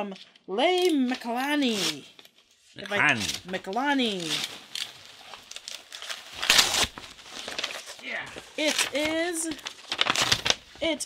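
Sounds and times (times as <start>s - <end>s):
wrapping tearing: 3.2s - 10.9s
package wrapping crinkling: 3.6s - 11.0s.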